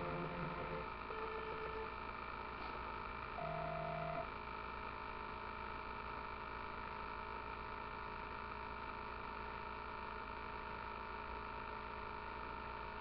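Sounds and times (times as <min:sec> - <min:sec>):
short steady tones: 0:00.0 - 0:01.9
electrical hum and hiss: 0:00.0 - 0:13.0.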